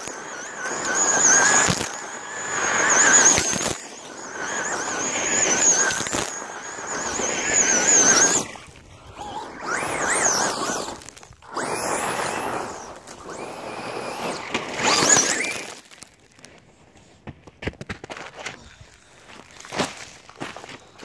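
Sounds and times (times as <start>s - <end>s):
electric motor whining: 0.0s - 16.0s
gravel crunching under tyres: 0.0s - 21.0s.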